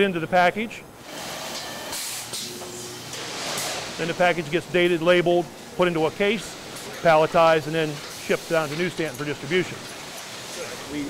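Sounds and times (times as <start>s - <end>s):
packaging machinery hissing: 1.0s - 11.0s.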